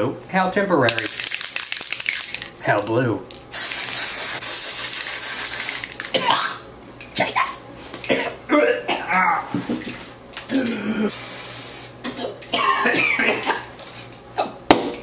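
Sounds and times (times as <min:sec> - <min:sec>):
aerosol spray hissing: 0:03.5 - 0:05.9, 0:11.1 - 0:12.0
person coughing: 0:06.1 - 0:06.6, 0:08.1 - 0:09.5, 0:10.5 - 0:11.1, 0:12.0 - 0:13.7, 0:14.4 - 0:14.6.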